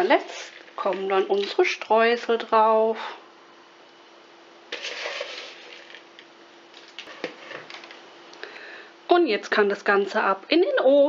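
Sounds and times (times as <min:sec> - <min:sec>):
crumbs rustling: 0:04.7 - 0:08.0.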